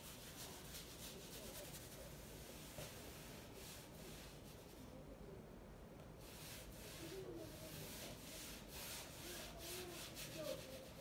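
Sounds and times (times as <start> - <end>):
rubbing strokes on canvas: 0.0 - 4.9, 6.2 - 11.0.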